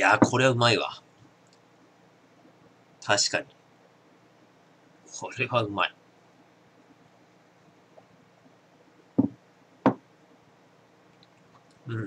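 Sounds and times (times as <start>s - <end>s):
glass knocking on wooden desk: 9.2s - 10.0s.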